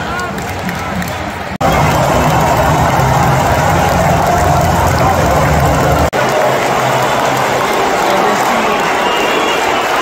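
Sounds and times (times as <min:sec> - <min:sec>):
stadium crowd roaring: 0:00.0 - 0:10.0.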